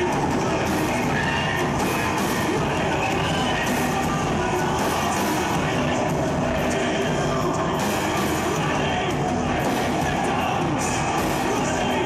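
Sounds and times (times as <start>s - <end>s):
live band music through pa: 0.0s - 12.0s.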